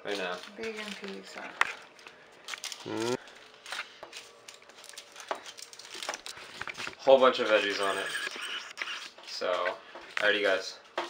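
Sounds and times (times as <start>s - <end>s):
aluminium foil crinkling: 0.0s - 9.6s.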